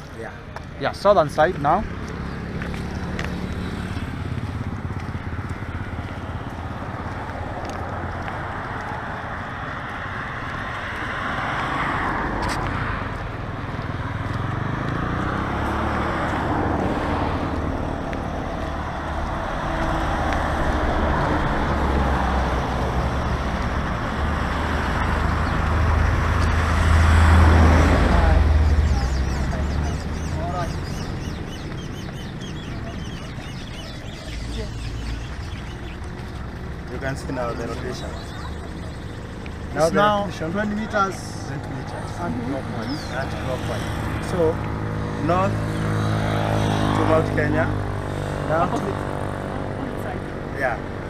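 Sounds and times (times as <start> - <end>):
passing vehicles: 0.0 - 51.0
vehicle passing close: 1.2 - 51.0.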